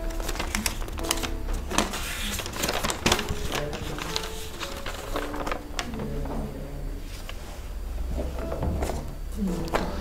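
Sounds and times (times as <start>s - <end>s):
paper crinkling and rustling: 0.0s - 9.1s.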